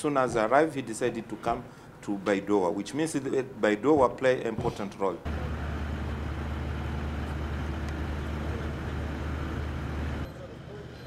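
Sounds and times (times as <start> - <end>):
outdoor background: 0.0 - 11.0
low rumble with hiss: 5.3 - 10.3.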